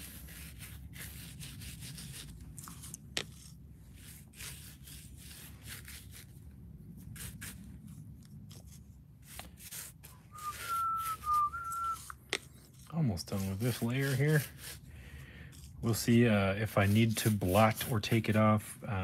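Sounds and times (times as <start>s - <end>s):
paintbrush scrubbing foam: 0.0s - 18.7s
person whistling: 10.2s - 12.1s.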